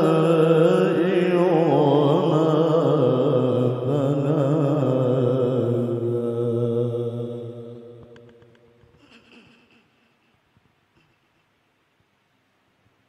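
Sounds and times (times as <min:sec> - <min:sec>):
man reciting in long ornamented note: 0:00.0 - 0:08.2.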